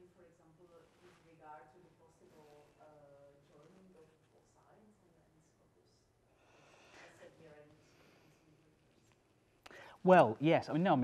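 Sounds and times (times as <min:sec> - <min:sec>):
short breath: 0:06.3 - 0:08.5, 0:09.7 - 0:10.0.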